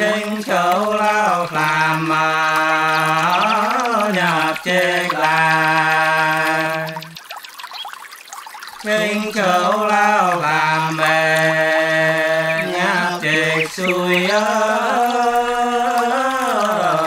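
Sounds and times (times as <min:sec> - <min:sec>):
person singing long notes: 0:00.0 - 0:07.2, 0:08.8 - 0:17.0.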